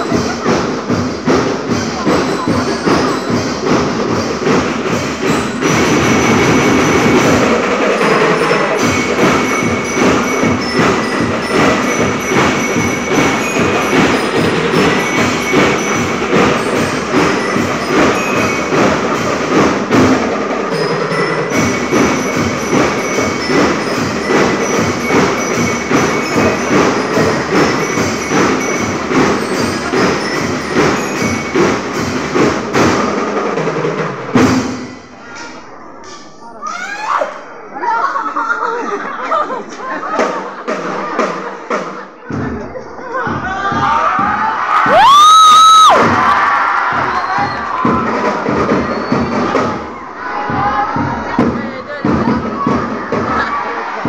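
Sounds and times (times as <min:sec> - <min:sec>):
marching band percussion: 0:00.0 - 0:36.4, 0:39.0 - 0:54.0
bell lyre notes: 0:01.6 - 0:32.7
steady high tone: 0:01.9 - 0:32.2.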